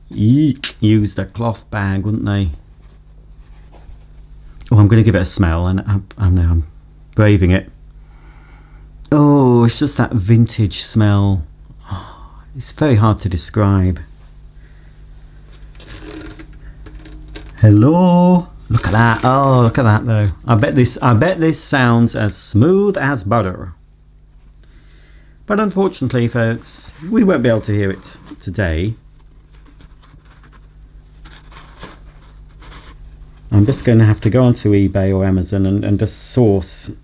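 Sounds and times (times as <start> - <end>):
cloth bag rustling and scratching: 15.5 - 17.7, 18.7 - 19.9, 29.2 - 33.9.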